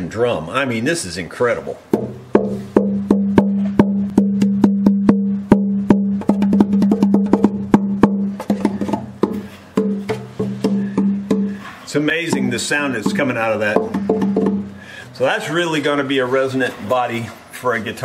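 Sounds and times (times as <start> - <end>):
deep boomy ringing: 1.9 - 15.3
knocks on guitar body: 2.0 - 11.6, 13.1 - 14.7.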